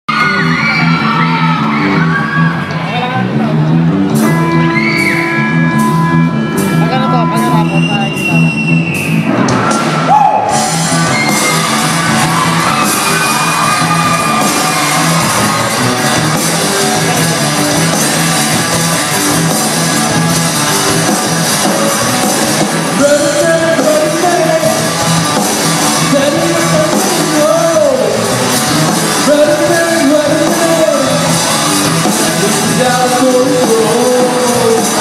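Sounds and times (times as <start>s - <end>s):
live rock band playing: 0.1s - 35.0s.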